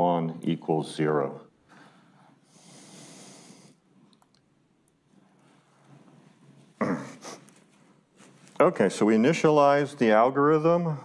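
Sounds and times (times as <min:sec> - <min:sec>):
man clearing his throat: 0:06.8 - 0:07.4.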